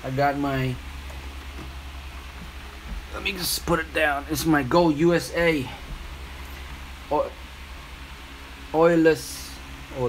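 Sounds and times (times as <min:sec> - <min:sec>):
low rumbling hum: 0:00.0 - 0:10.0.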